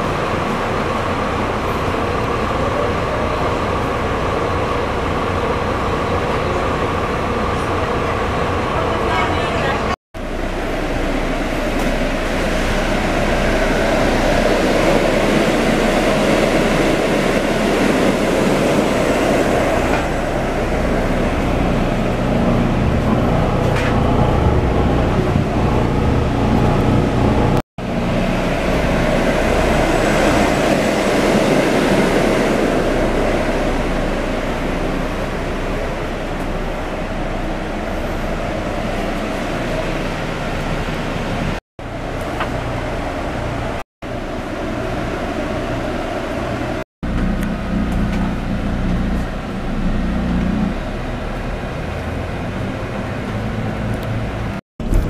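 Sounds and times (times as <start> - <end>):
coach road and engine rumble: 0.0 - 55.0.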